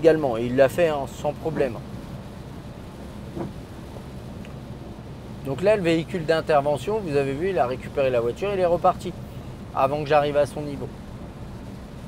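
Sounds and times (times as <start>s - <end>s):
rain: 0.0s - 12.0s
road and tyre rumble: 0.0s - 12.0s.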